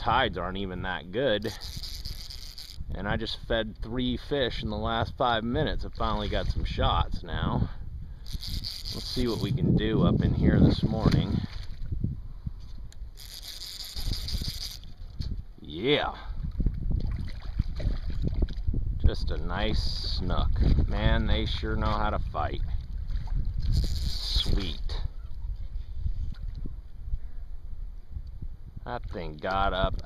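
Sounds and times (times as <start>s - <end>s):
wind rumbling on microphone: 0.0s - 30.0s
fly reel drag buzzing: 1.4s - 3.0s, 8.2s - 9.6s, 12.6s - 15.3s, 23.6s - 24.8s.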